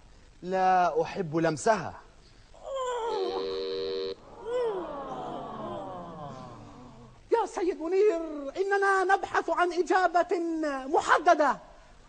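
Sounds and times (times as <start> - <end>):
man moaning: 4.4 - 7.2.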